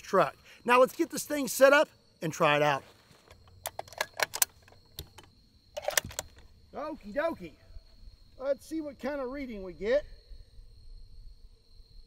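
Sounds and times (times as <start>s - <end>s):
rustling: 2.8s - 7.2s
sharp clicks and light clatter: 3.3s - 6.5s.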